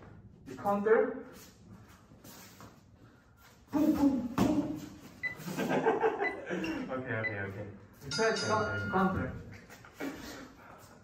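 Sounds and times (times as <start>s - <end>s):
people shuffling feet: 1.3s - 5.2s, 9.4s - 11.0s
person speaking: 6.8s - 9.6s.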